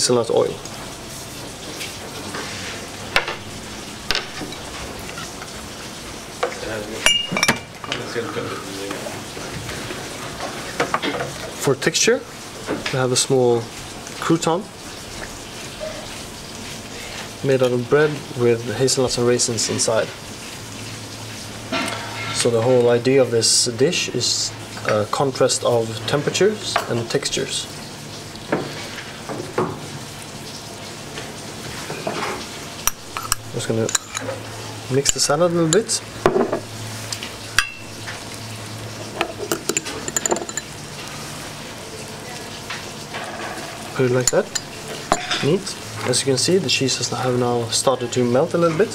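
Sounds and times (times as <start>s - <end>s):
steady hissing noise: 0.0s - 9.9s, 30.8s - 41.9s
spoon scraping ceramic bowl: 32.9s - 34.4s.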